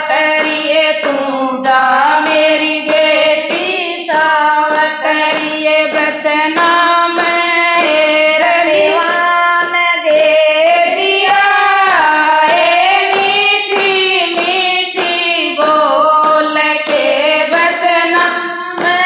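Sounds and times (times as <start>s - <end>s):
hands clapping steady beat: 0.0s - 19.0s
women singing devotional song: 0.0s - 19.0s.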